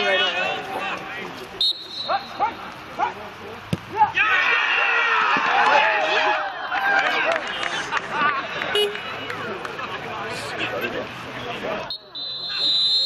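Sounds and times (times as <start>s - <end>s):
crowd shouting and cheering: 0.0s - 13.0s
soccer ball kicked: 3.7s - 4.0s.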